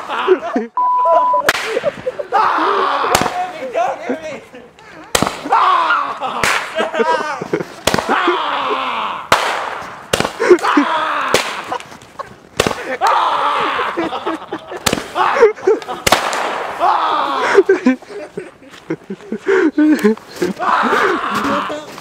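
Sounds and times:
people shouting and shrieking: 0.0s - 18.6s, 19.6s - 22.0s
firecrackers cracking: 1.4s - 2.2s, 3.0s - 3.7s, 5.0s - 8.4s, 9.2s - 13.2s, 14.0s - 17.9s.

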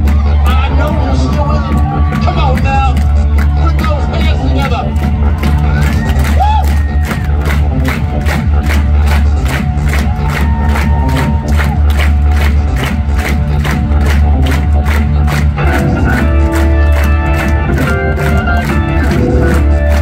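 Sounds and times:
drums beating: 0.0s - 20.0s
rock band playing live: 15.3s - 20.0s.

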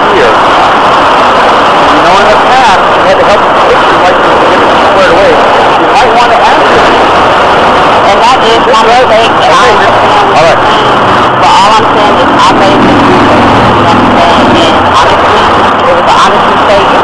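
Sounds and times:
loud steady noise: 0.0s - 17.0s
two people talking: 1.8s - 17.0s.

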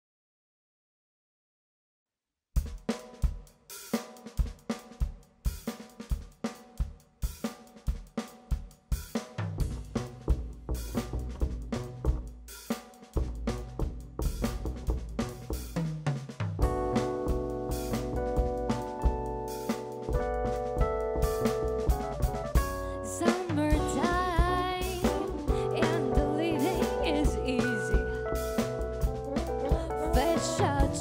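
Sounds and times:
jazz drum kit groove: 2.6s - 31.0s
keyboard chords: 16.6s - 23.0s, 25.0s - 31.0s
double bass walking notes: 16.6s - 31.0s.

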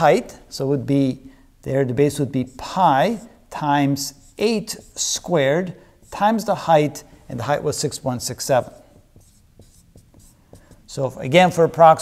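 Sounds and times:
marker pen writing on whiteboard: 2.1s - 12.0s.

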